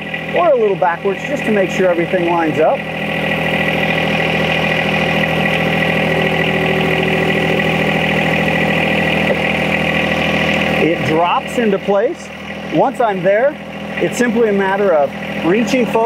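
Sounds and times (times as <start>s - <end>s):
tractor diesel engine running: 0.0s - 16.0s.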